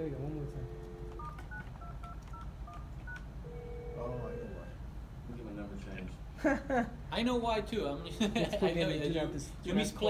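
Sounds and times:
steady low phone tone: 0.0 - 4.9
keypad dialing tones: 0.6 - 4.0.

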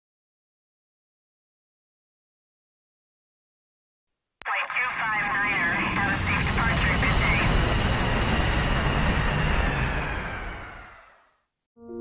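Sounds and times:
jet airliner taking off: 4.5 - 11.4.

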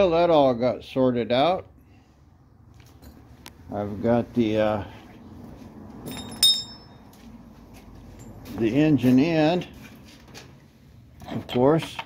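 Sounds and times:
metallic clink: 6.0 - 7.0.

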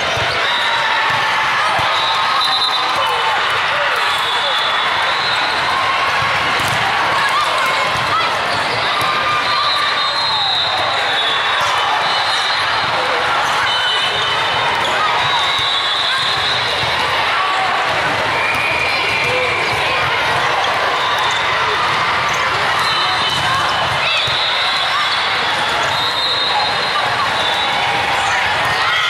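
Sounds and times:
many voices talking and calling: 0.0 - 29.0
volleyballs struck and bouncing: 5.5 - 9.5.

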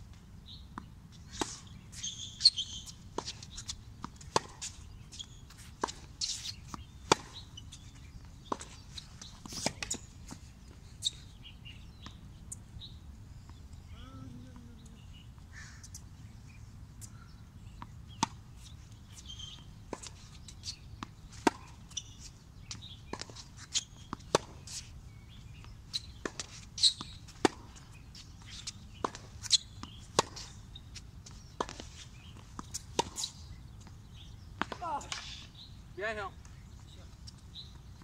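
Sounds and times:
tennis ball bouncing on court: 2.3 - 4.8, 5.5 - 10.0, 19.5 - 22.0, 22.7 - 24.8, 25.6 - 30.5, 31.2 - 35.3
tennis ball off racket strings: 5.8 - 7.4, 26.2 - 30.5.

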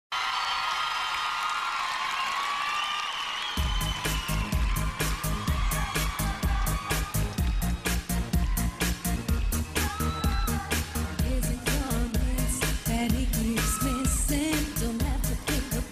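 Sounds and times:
arena crowd cheering and screaming: 0.1 - 15.9
pop song with heavy bass: 3.6 - 15.9.

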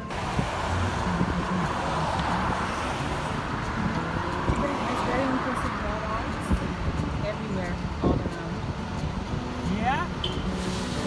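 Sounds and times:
car road noise: 0.0 - 11.0.

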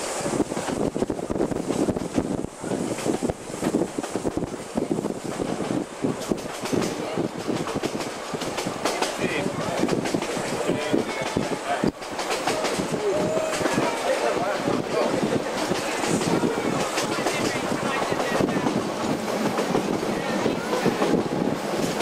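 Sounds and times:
steady rushing noise: 0.0 - 22.0
train wheels clattering on track: 0.0 - 22.0.

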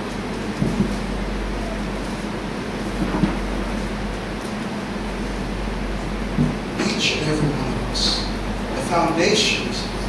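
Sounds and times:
constant low hum: 0.0 - 10.0
room noise hiss: 0.0 - 10.0.

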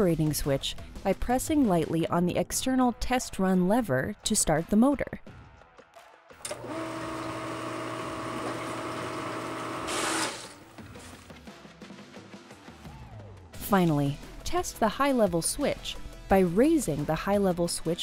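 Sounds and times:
electric pump motor whirring: 6.4 - 10.7.

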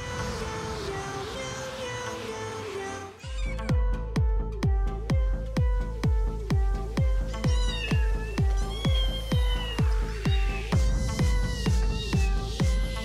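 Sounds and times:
electronic dance music: 0.0 - 13.0
kitten meowing: 3.2 - 3.6, 7.4 - 10.7.

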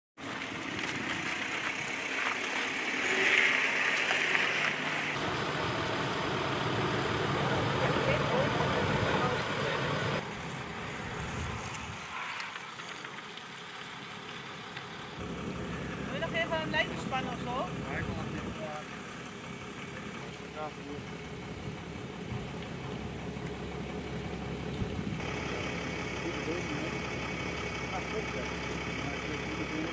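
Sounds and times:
vehicle engines running: 0.2 - 29.9.

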